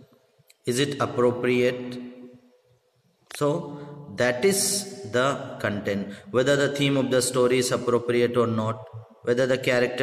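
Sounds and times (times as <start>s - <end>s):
man speaking: 0.6s - 2.0s, 3.3s - 10.0s.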